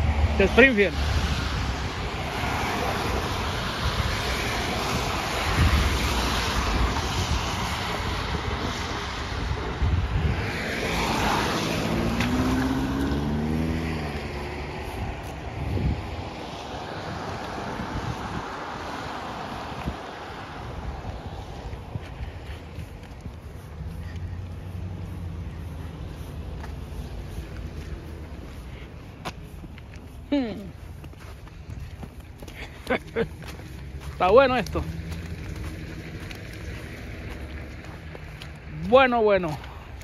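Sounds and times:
wind rumbling on microphone: 0:00.0 - 0:40.0.

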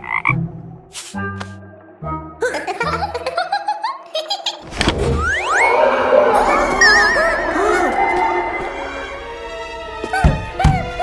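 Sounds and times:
cartoon frog croak: 0:00.0 - 0:00.4.

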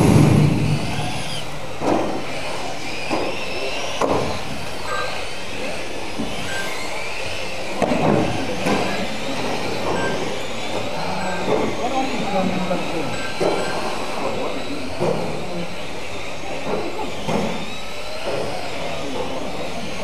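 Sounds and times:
electric motors whining: 0:00.0 - 0:20.0.

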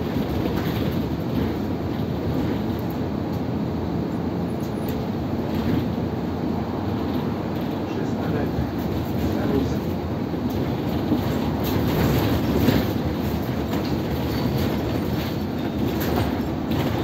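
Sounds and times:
bus engine and tyre rumble: 0:00.0 - 0:17.0.

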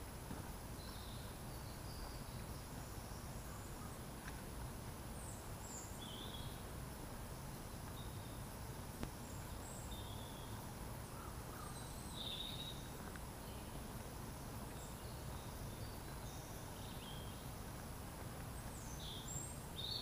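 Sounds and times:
birdsong chirps and calls: 0:00.0 - 0:20.0.

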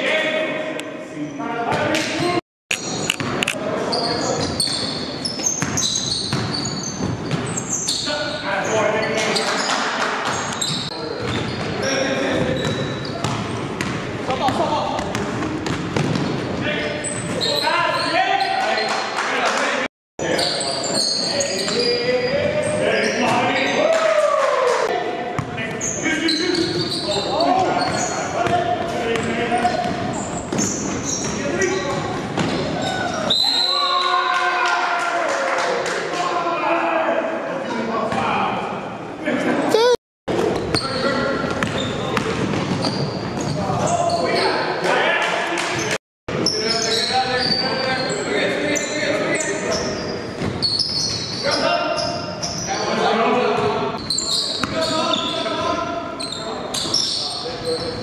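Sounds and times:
sneakers squeaking on hardwood: 0:01.7 - 0:19.0, 0:20.4 - 0:23.8, 0:25.4 - 0:33.6, 0:40.6 - 0:44.6, 0:45.8 - 0:52.9, 0:53.6 - 0:58.0
basketball bouncing: 0:05.4 - 0:07.5, 0:12.6 - 0:16.6.

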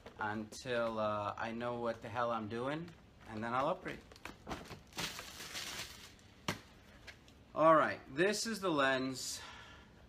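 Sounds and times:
plastic bag crinkling: 0:01.8 - 0:06.3.

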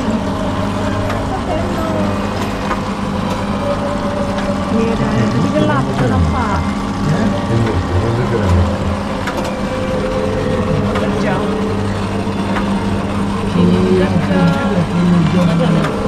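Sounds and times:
indistinct chatter: 0:00.0 - 0:16.0
steady low hum: 0:00.0 - 0:16.0.

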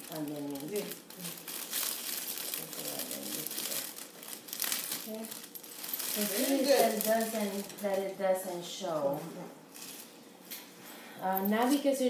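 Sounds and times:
plastic bag crinkling: 0:00.0 - 0:08.2, 0:09.7 - 0:10.2.

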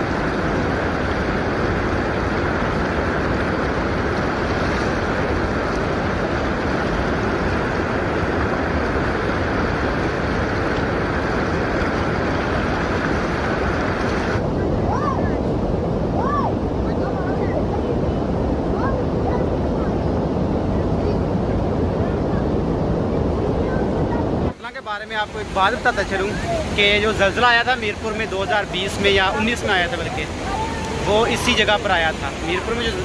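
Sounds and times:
wind on microphone: 0:00.0 - 0:24.6
fast-flowing water rushing: 0:00.0 - 0:33.0.

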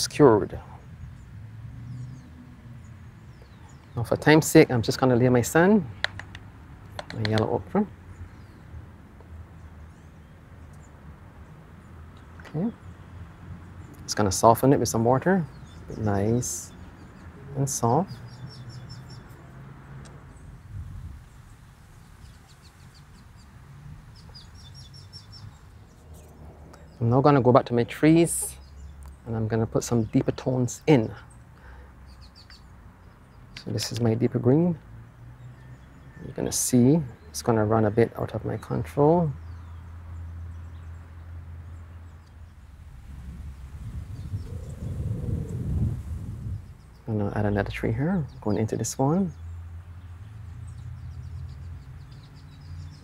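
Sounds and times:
small bird chirping: 0:00.8 - 0:04.4, 0:09.6 - 0:34.1, 0:38.4 - 0:53.0
low outdoor rumble: 0:42.0 - 0:51.1
faint hum rising and falling: 0:42.5 - 0:47.2.

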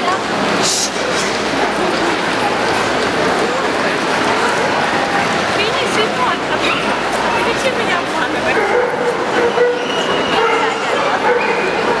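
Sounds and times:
crowd chatter: 0:00.0 - 0:12.0
dogs barking and yelping: 0:08.5 - 0:12.0.

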